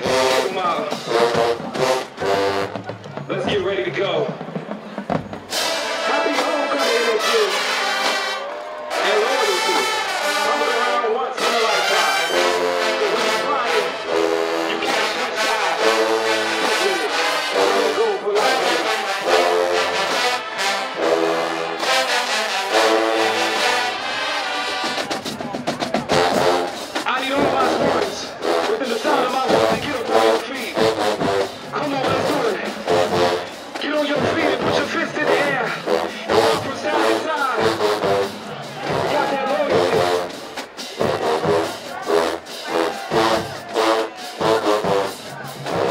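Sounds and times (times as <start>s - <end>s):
marching band brass chords: 0.0s - 45.9s.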